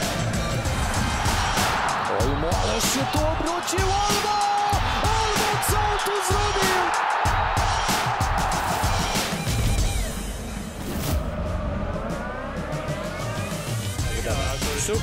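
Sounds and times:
background music with steady beat: 0.0s - 15.0s.

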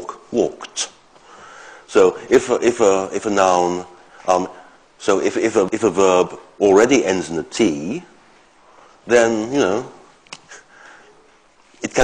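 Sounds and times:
man speaking: 0.0s - 1.0s, 1.9s - 8.2s, 9.0s - 10.6s, 11.8s - 12.0s.

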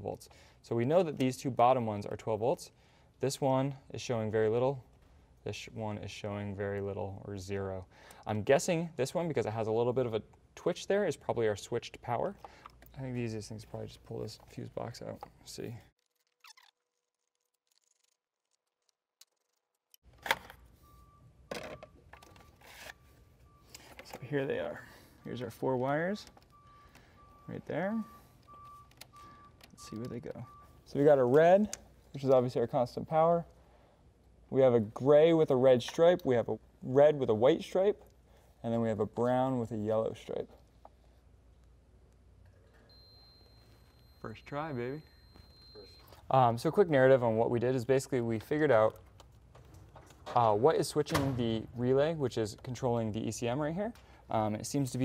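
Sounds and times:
multimeter continuity beep: 20.8s - 23.9s, 24.8s - 30.9s, 42.8s - 46.2s.

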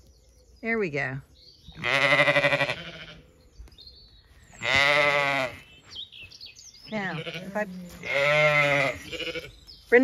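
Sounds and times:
sheep bleating: 1.8s - 3.2s, 4.6s - 5.6s, 6.9s - 9.6s.

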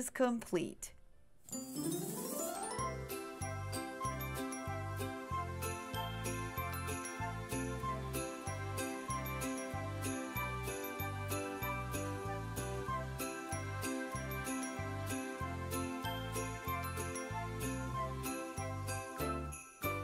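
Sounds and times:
bright high percussion: 1.5s - 12.3s, 13.3s - 20.0s.

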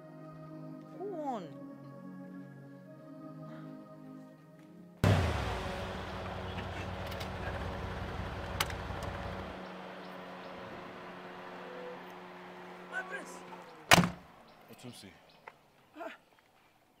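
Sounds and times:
steady low hum: 5.0s - 11.6s
car engine and road noise: 5.0s - 15.8s.

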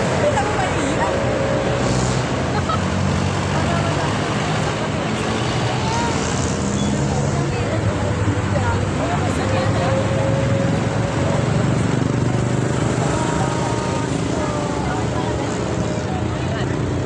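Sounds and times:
babble of voices: 0.0s - 17.0s
roadside din: 0.0s - 17.0s
vehicle engines humming: 0.0s - 17.0s.

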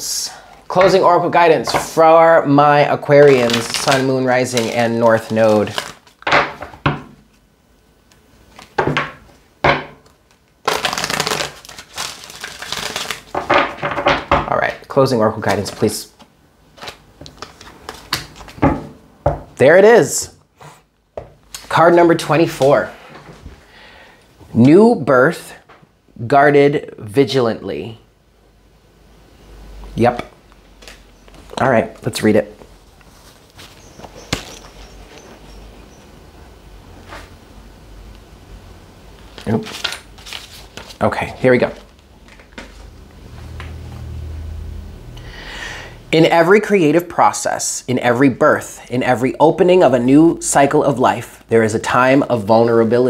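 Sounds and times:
low steady hum: 0.0s - 53.0s
cards being shuffled: 3.2s - 7.4s, 10.0s - 13.8s, 15.4s - 18.8s, 30.8s - 35.4s, 39.2s - 42.9s.

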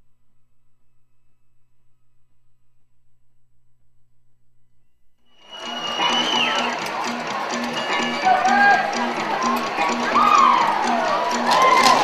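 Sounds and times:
high whistle sliding down: 5.3s - 6.8s
audience cheering and clapping: 5.4s - 12.0s.

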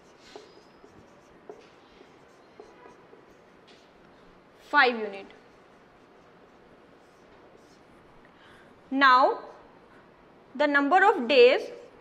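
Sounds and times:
marker writing on whiteboard: 0.0s - 8.2s.

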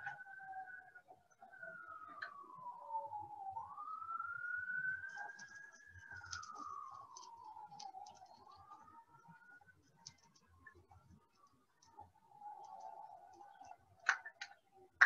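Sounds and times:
faint siren wailing: 0.0s - 15.0s.

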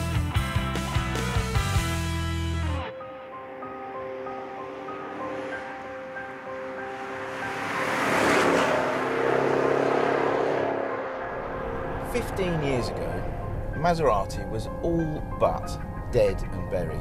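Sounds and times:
background music: 0.0s - 17.0s
car passing by: 3.3s - 13.8s.

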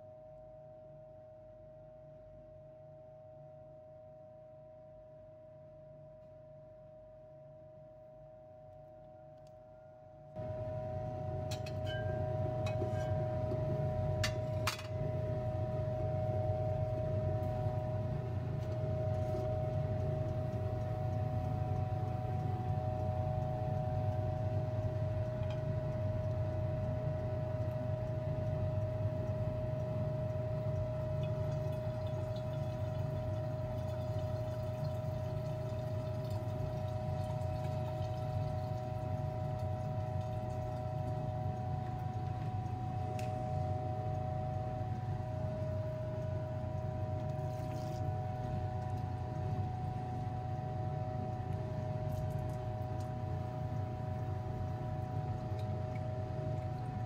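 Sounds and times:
exhaust fan humming and whining: 9.1s - 57.0s.

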